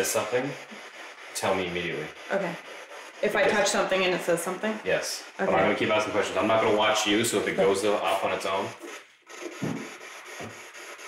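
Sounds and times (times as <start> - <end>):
footsteps on a hard floor: 9.4 - 10.7.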